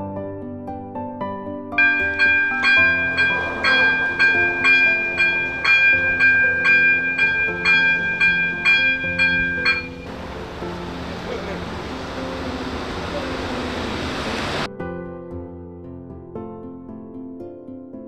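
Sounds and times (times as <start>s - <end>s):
background music: 0.0s - 18.0s
level crossing warning bell: 1.8s - 14.7s.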